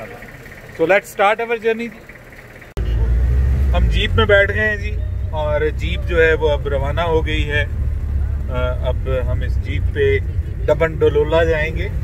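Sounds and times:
engine and road rumble inside car: 0:01.9 - 0:12.0.

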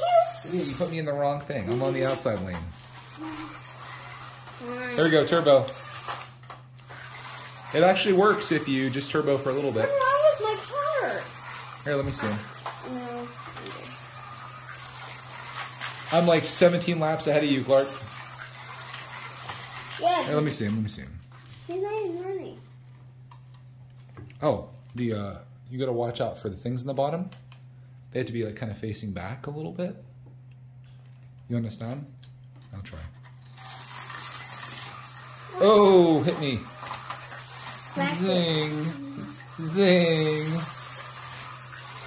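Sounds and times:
toy car clicking on plastic track: 0:00.0 - 0:00.9, 0:01.7 - 0:20.9, 0:33.2 - 0:42.0
slot car hum with high hiss: 0:33.5 - 0:42.0
person speaking: 0:37.9 - 0:40.8.

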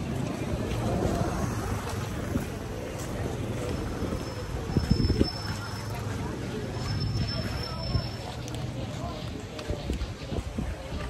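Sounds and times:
wind buffeting microphone: 0:00.0 - 0:05.7, 0:09.0 - 0:11.0.

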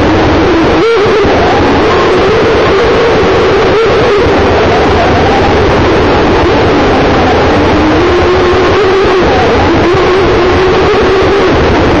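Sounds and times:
electric motor whining: 0:00.0 - 0:12.0.

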